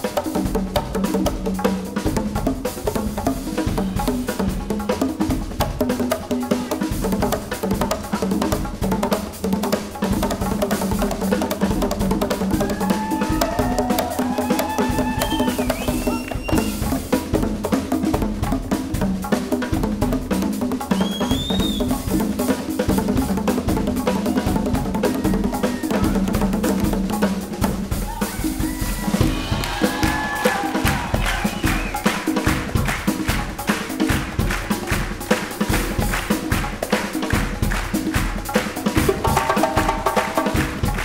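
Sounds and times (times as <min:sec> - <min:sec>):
drum kit with cymbals: 0:00.0 - 0:41.0
hand drums: 0:00.0 - 0:41.0.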